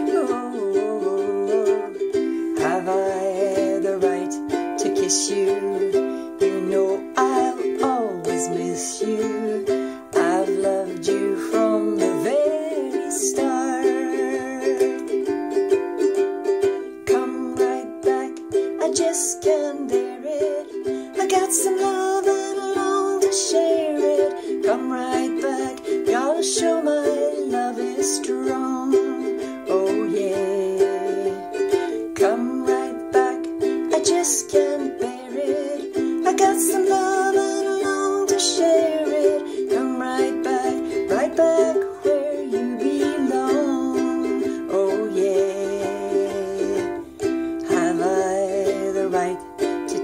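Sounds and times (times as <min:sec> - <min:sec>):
ukulele strumming: 0:00.0 - 0:50.0
woman singing: 0:00.0 - 0:50.0.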